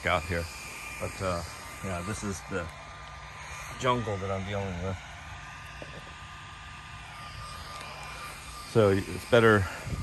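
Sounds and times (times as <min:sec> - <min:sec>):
high whine: 0:00.0 - 0:10.0
small electric motor humming: 0:00.0 - 0:10.0.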